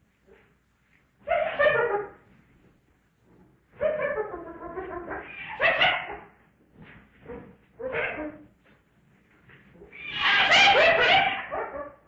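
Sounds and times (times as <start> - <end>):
animal calls: 9.8 - 12.0.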